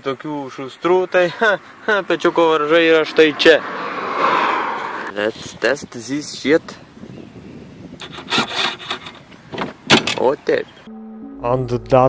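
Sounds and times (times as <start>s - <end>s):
plastic part rubbing and scraping: 8.0s - 9.4s.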